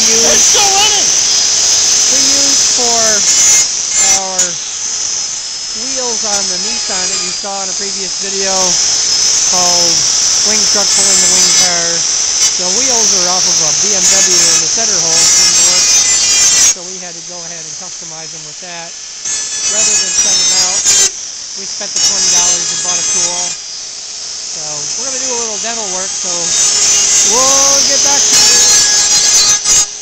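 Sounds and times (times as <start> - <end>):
man talking: 0.0 - 3.4, 4.0 - 4.6, 5.8 - 8.8, 9.5 - 15.5, 24.6 - 28.9
die grinder whining: 0.0 - 30.0.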